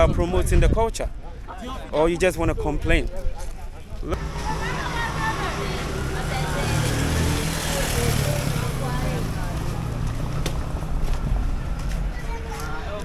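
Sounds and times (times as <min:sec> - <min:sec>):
faint voices: 0:01.0 - 0:13.0
low vehicle rumble: 0:04.2 - 0:13.0.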